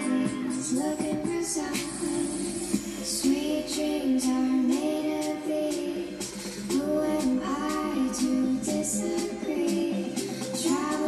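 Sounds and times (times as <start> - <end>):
woman singing song: 0.0 - 11.0.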